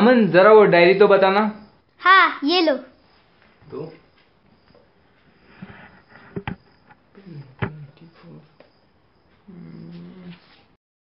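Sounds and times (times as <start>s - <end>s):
person humming low: 9.5s - 10.4s.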